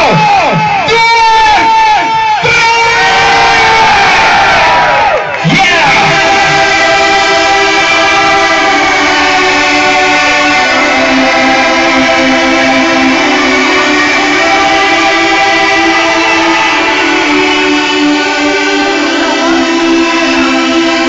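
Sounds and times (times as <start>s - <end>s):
long downward synth sweep: 5.7s - 21.0s
sustained layered synth chords: 5.7s - 21.0s.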